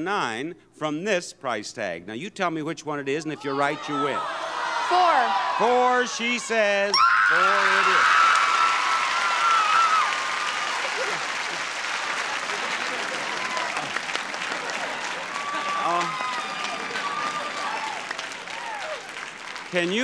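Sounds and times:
audience applauding and cheering: 7.0s - 20.0s
bursts of voices and laughter: 10.7s - 17.8s.

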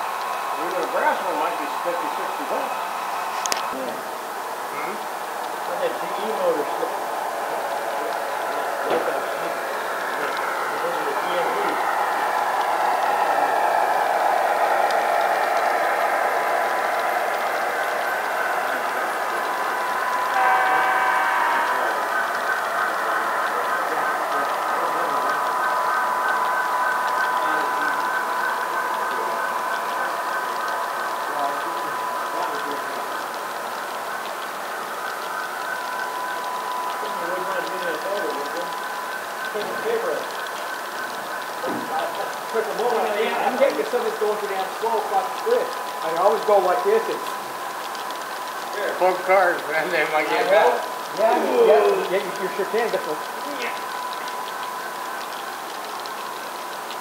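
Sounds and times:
model train rolling with whine: 0.0s - 57.0s.

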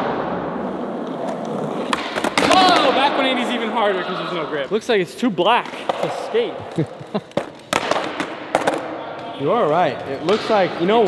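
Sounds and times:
skateboard wheels rolling on concrete: 0.0s - 4.2s
skateboard clacks: 7.3s - 8.9s.

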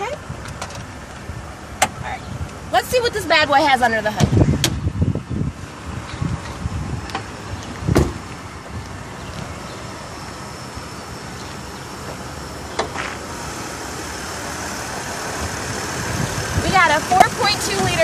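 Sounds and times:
hood safety catch clicks: 1.8s - 2.6s, 4.2s - 4.9s, 6.0s - 8.2s
car door shutting: 7.1s - 8.3s, 12.1s - 13.2s.

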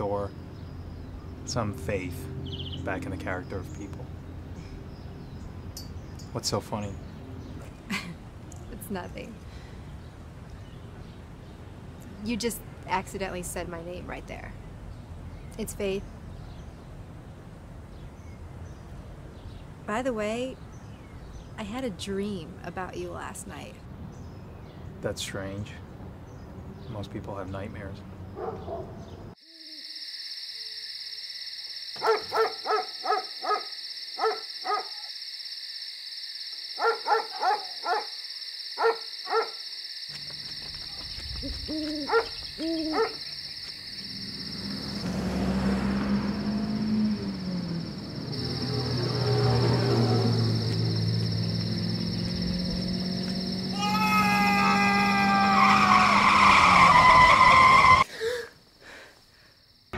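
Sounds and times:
owl-like hoots: 41.4s - 43.3s
car engine rumble: 43.9s - 53.8s.

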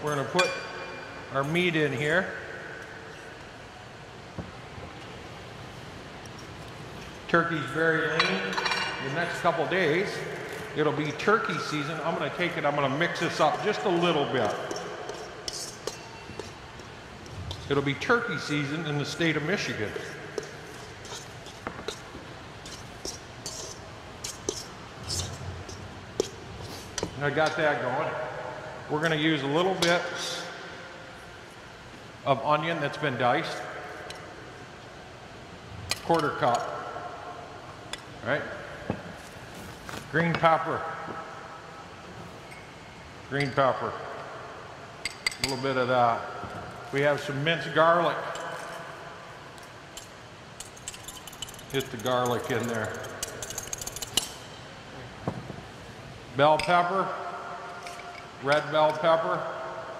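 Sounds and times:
man speaking: 1.3s - 2.3s, 7.3s - 14.6s, 17.7s - 20.1s, 27.2s - 28.3s, 28.9s - 30.6s, 45.4s - 46.3s, 46.9s - 48.3s, 51.7s - 53.0s.

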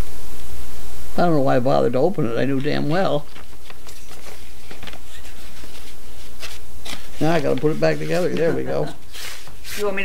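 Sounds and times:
steady low hum: 0.0s - 10.0s
paper rustling and crinkling: 2.6s - 10.0s.

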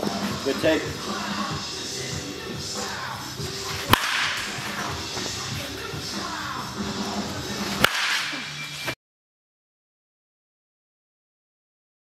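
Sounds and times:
background music: 0.0s - 9.0s
bat striking ball: 3.8s - 5.3s, 7.7s - 8.8s.

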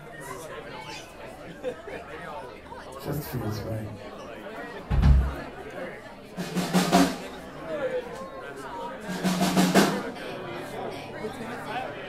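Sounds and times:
crowd chatter: 0.0s - 12.0s
bass drum thump: 4.9s - 5.5s
drum rolls: 4.9s - 5.5s, 6.4s - 7.3s, 9.1s - 10.1s.

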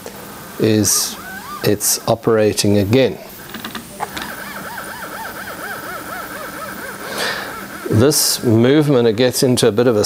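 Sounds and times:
stepper motors whining: 0.3s - 9.5s.

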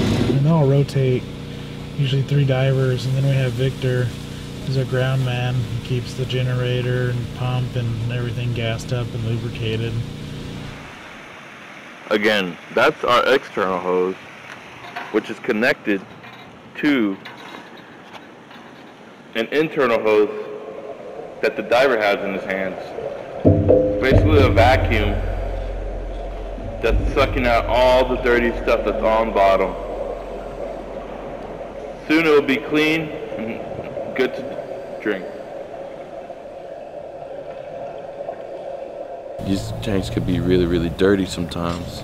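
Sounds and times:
small gasoline pump engine: 0.0s - 10.8s
water pouring from hose: 1.0s - 10.9s
low hum: 23.5s - 36.2s
water rushing through suction vacuum: 23.9s - 33.4s.

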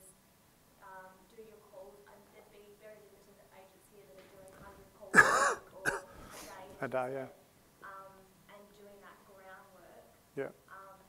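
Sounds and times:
man coughing: 5.2s - 6.1s.

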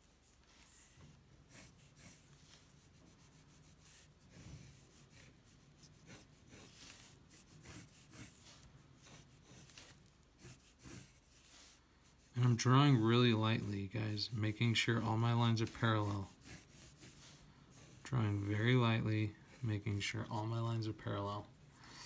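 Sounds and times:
pencil scratching on paper: 0.0s - 21.5s.

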